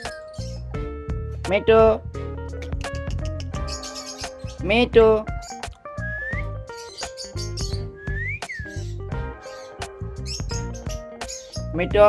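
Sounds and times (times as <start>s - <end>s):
background music with steady beat: 0.0s - 12.0s
parakeet whistling: 2.6s - 4.7s, 5.4s - 11.7s.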